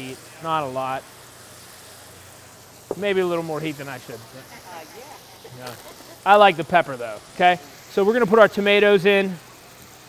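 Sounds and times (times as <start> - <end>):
meat and vegetables sizzling: 0.0 - 10.0.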